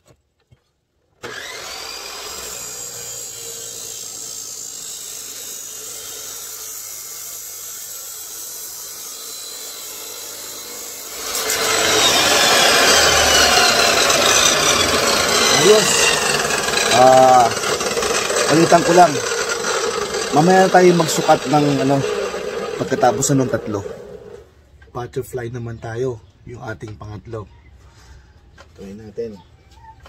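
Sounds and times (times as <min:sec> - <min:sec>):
chop saw motor whining: 0:01.2 - 0:24.5
saw disc grinding steel tube: 0:01.2 - 0:24.5.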